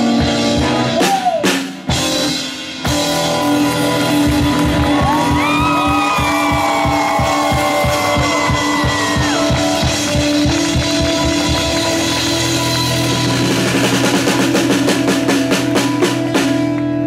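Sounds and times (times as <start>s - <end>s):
rapid drum hits: 0.1s - 16.7s.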